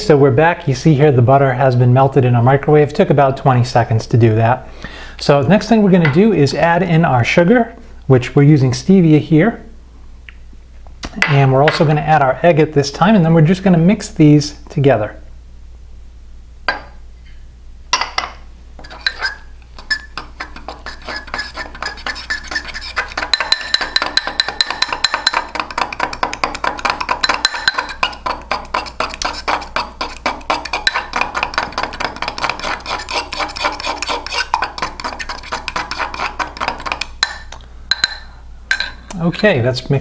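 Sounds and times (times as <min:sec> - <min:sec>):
fork clinking against mug: 0:18.9 - 0:39.0.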